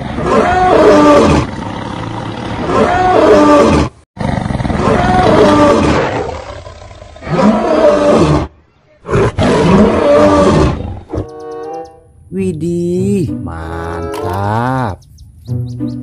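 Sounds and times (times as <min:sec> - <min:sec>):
male lion roaring: 0:00.0 - 0:11.2.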